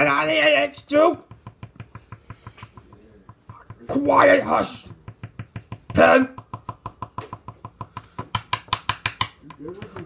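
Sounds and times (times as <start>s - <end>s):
pen tapping on desk: 1.2s - 4.0s, 4.8s - 10.0s.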